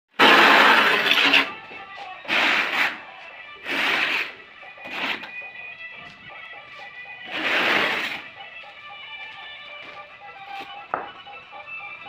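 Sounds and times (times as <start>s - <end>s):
trowel scraping adhesive on wall: 0.2s - 1.5s, 2.3s - 3.0s, 3.6s - 5.4s, 7.3s - 8.3s.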